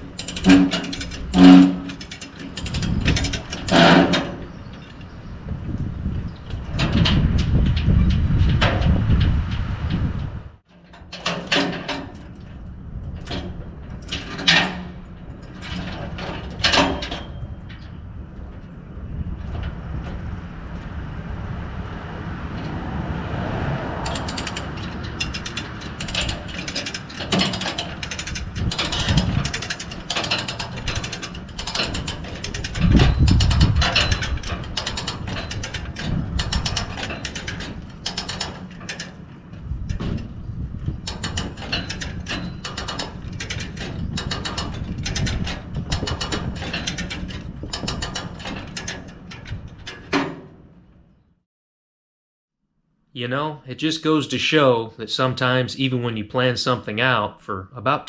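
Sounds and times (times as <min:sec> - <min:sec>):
hand winch ratchet clicking: 0:00.0 - 0:04.9, 0:24.0 - 0:39.2, 0:41.0 - 0:50.3.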